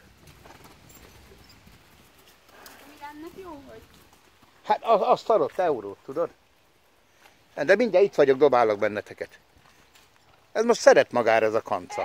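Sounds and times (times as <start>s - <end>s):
horse hooves walking: 0.0s - 12.0s.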